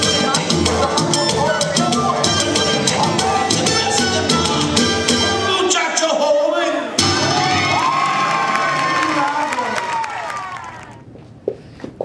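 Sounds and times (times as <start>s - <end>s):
audience cheering and whooping: 7.0s - 11.0s.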